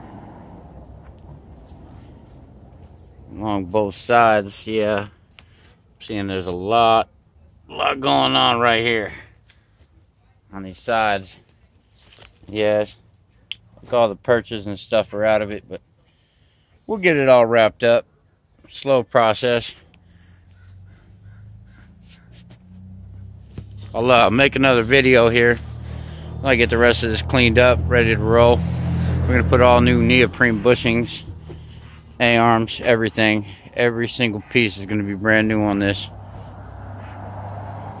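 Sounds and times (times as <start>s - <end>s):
faint bird calls: 20.1s - 22.5s.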